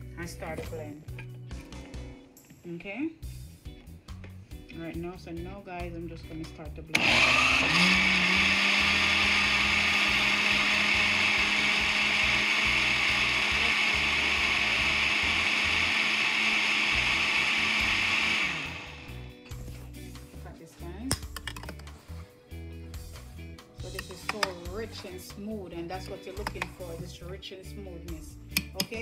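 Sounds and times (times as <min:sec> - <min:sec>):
blender running: 0:06.9 - 0:19.3.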